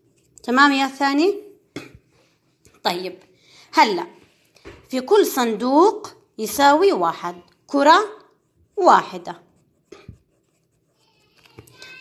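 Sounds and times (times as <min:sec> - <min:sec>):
pencil rustling on paper: 0:00.0 - 0:01.0, 0:06.6 - 0:12.0.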